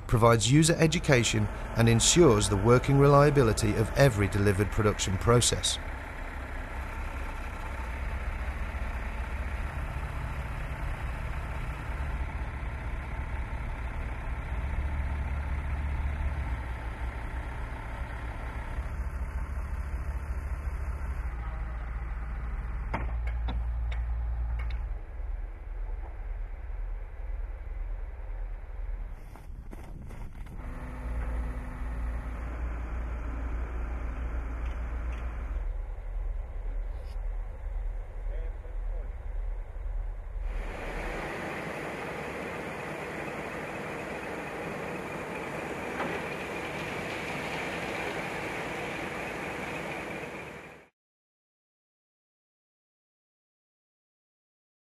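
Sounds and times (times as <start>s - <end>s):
concrete mixer truck running: 0.0s - 29.4s, 30.4s - 50.9s
steady low rumble: 7.6s - 41.3s.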